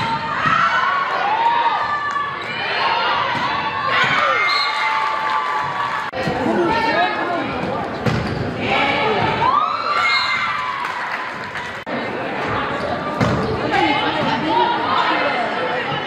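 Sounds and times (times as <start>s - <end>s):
crowd shouting and cheering: 0.0s - 16.0s
sneakers squeaking on floor: 7.6s - 8.6s.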